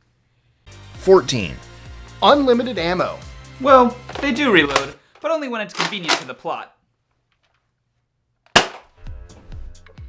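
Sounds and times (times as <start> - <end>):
music with light hits: 1.9 - 5.0, 8.9 - 10.0.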